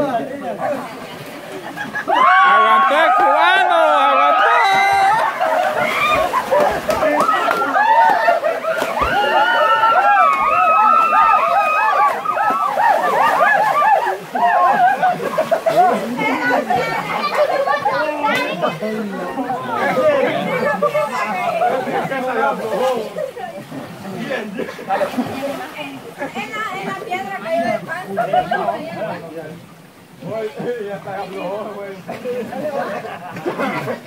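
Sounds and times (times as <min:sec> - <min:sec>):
people shouting and laughing: 0:01.5 - 0:29.2, 0:31.8 - 0:34.0
splashing in water: 0:04.3 - 0:18.8, 0:21.6 - 0:27.2.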